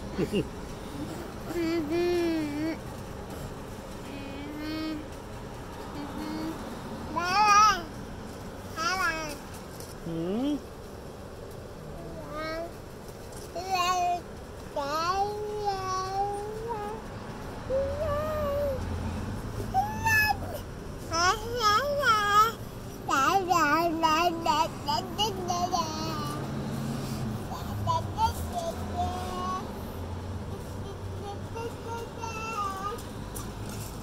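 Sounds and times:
toddler babbling: 1.0s - 2.8s, 4.2s - 5.2s, 5.9s - 8.0s, 8.8s - 9.4s, 11.9s - 12.8s, 13.6s - 14.2s, 14.8s - 18.9s, 19.6s - 26.6s, 27.4s - 29.7s, 30.5s - 33.1s.

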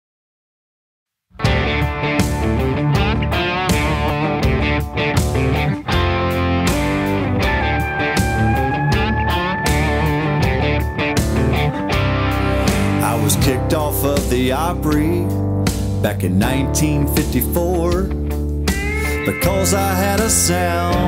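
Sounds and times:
country band playing: 1.4s - 21.0s
pedal steel guitar long note: 5.4s - 13.5s, 18.7s - 21.0s.

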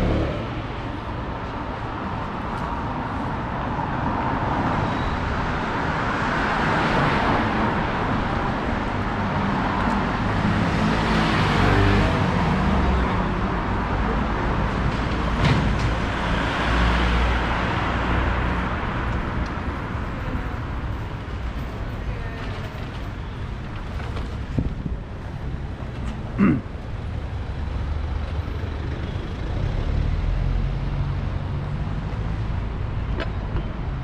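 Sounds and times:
vehicles passing: 0.0s - 34.0s.

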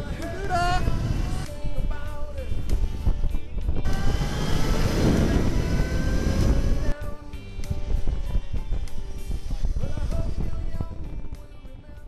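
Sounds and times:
background music: 0.0s - 12.0s
loud rushing whoosh: 2.9s - 7.0s.

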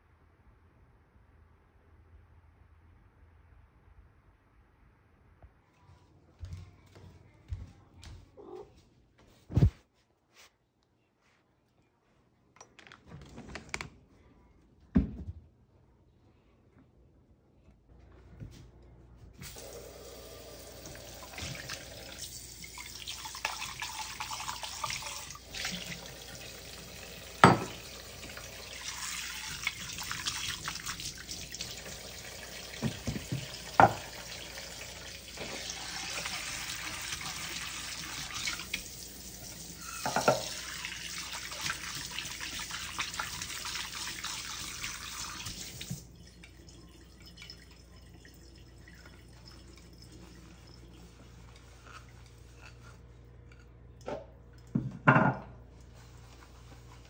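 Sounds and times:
bowls knocking: 27.4s - 27.8s
tap running into metal sink: 40.0s - 40.6s.

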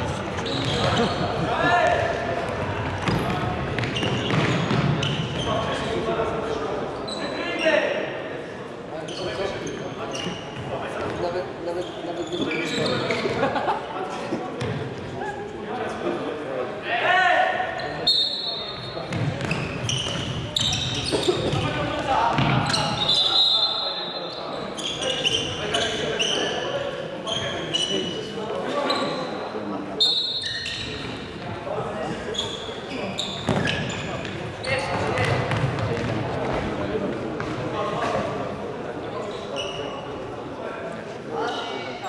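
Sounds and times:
players shouting in echoing hall: 0.0s - 8.6s, 14.8s - 36.2s.

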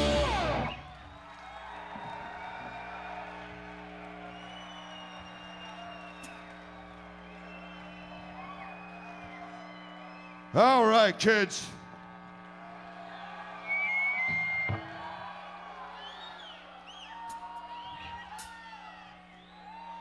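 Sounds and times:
amplifier hum: 0.0s - 1.0s, 2.3s - 20.0s
rock band drums and guitar: 0.0s - 1.0s, 14.2s - 15.0s
crowd cheering and whooping: 0.0s - 10.5s, 11.8s - 20.0s
whistle: 4.3s - 10.4s, 13.6s - 14.9s, 16.0s - 18.6s, 19.3s - 20.0s.

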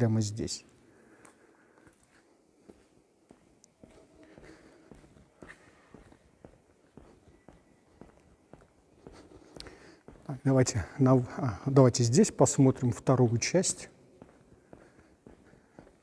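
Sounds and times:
footsteps on concrete floor: 0.6s - 16.0s.

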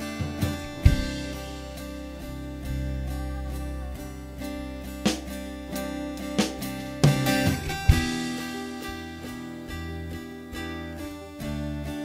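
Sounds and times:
strummed acoustic guitar chords: 0.0s - 12.0s.

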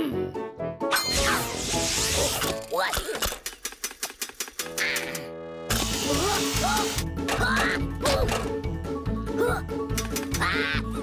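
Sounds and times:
cartoon background music: 0.0s - 3.4s, 4.6s - 11.0s.

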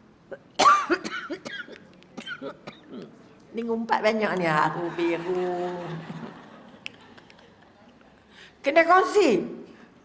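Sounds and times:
woman coughing: 0.6s - 3.1s.

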